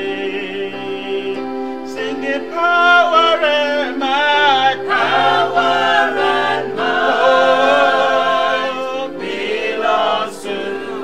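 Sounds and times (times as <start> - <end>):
men singing a hymn: 0.0 - 11.0.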